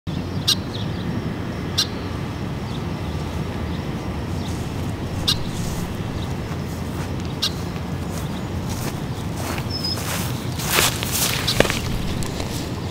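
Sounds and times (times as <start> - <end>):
bird chirping: 0.1 - 12.9
low background rumble: 0.1 - 12.9.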